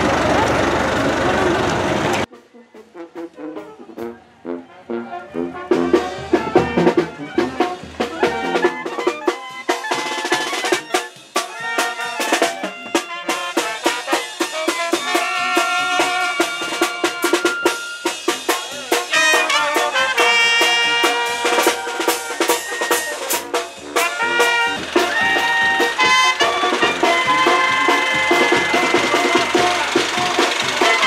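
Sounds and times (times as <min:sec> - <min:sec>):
brass band playing: 0:01.2 - 0:31.0.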